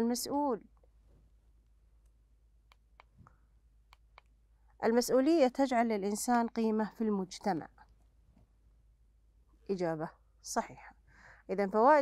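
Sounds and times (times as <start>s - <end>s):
computer mouse clicks: 2.0s - 4.4s.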